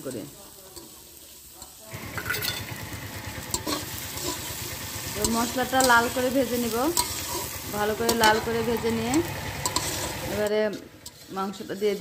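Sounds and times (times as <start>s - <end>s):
onions sizzling in oil: 0.0s - 12.0s
metal spatula scraping pan: 3.4s - 12.0s.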